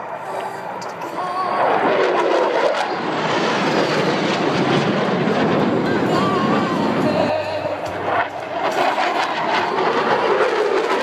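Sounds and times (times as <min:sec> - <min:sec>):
jet engine roaring overhead: 0:00.0 - 0:11.0.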